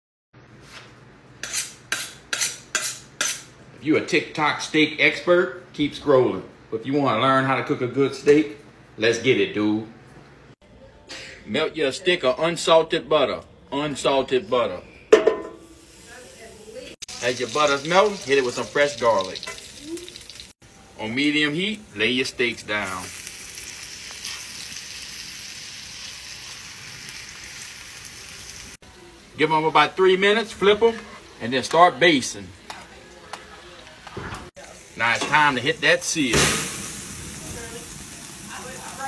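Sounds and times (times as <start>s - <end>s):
butter sizzling in a skillet: 15.6s - 34.0s, 34.6s - 39.0s.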